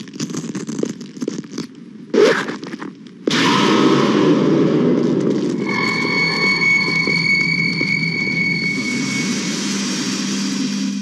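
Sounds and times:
scratching and scraping on road: 0.0s - 3.3s, 5.0s - 10.2s.

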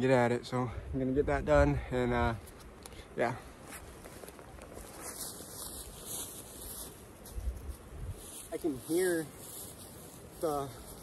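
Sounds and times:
footsteps in dry leaves: 3.6s - 11.0s.

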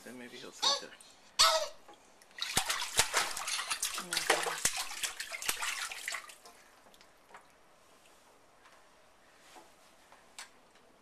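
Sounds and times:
water splashing in metal sink: 2.3s - 6.5s.

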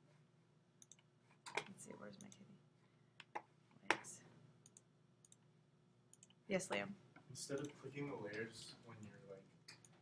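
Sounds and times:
computer mouse clicks: 0.8s - 2.4s, 4.6s - 5.4s, 6.1s - 6.4s.

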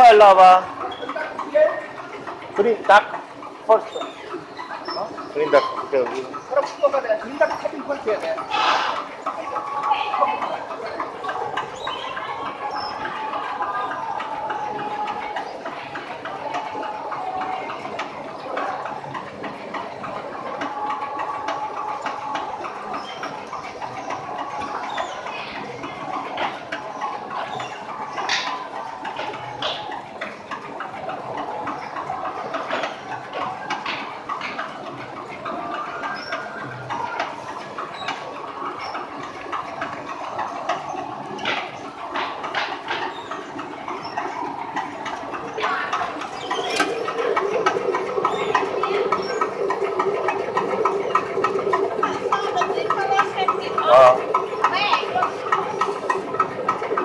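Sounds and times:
fabric inspection machine running: 0.0s - 57.0s
fast ticking counter: 9.1s - 57.0s
small clicks and squeaks: 31.4s - 53.8s.

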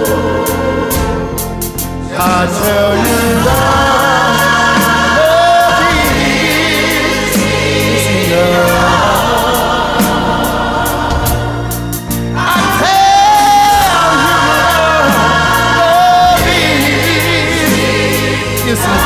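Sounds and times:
bass notes: 0.0s - 19.0s
voices singing held notes: 0.0s - 19.0s.

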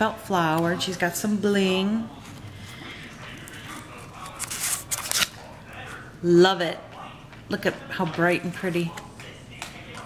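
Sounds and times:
plastic and paper packaging crinkling: 2.2s - 6.0s.

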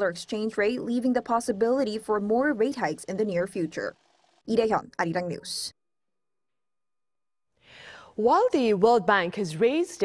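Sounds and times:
soft intake of breath: 7.6s - 8.2s.

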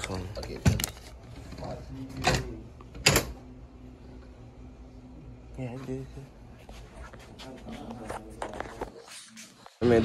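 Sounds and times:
faint steady hum: 0.0s - 9.0s.

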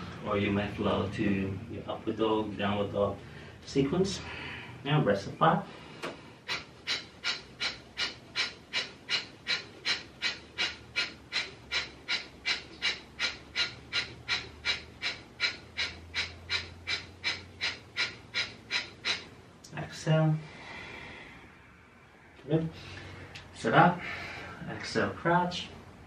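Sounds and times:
man breathing rapidly: 3.2s - 4.8s, 5.6s - 19.6s, 20.4s - 21.8s, 22.6s - 24.7s.

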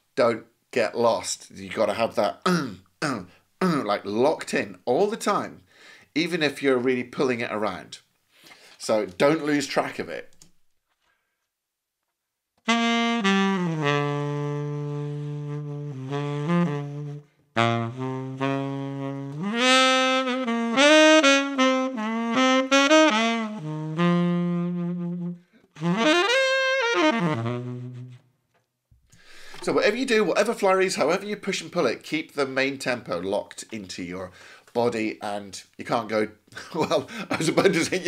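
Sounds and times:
tenor saxophone jazz ballad: 12.6s - 28.4s, 29.2s - 30.3s.

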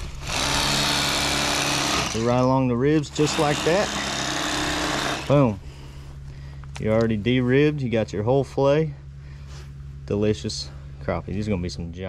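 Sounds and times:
electric fillet knife humming: 0.0s - 5.6s.

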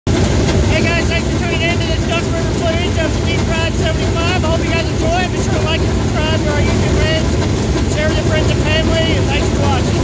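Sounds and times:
race car engines rumbling: 0.1s - 10.0s
man talking: 0.7s - 10.0s.

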